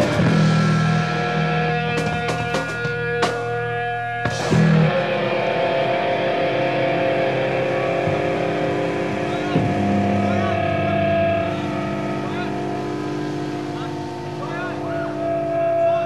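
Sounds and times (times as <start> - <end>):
guitar and bass droning notes: 0.0 - 16.0
whistling guitar feedback: 0.0 - 16.0.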